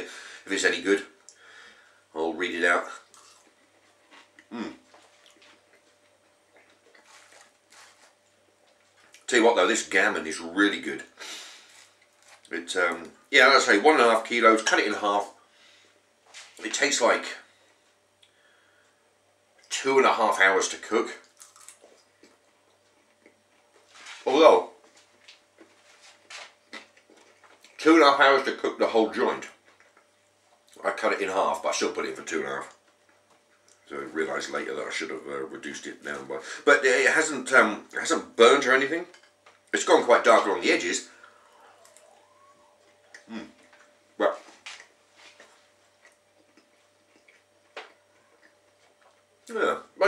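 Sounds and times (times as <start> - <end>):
person chewing food: 3.0 - 9.3, 11.6 - 12.5, 21.2 - 23.9, 24.8 - 27.8, 41.2 - 49.4.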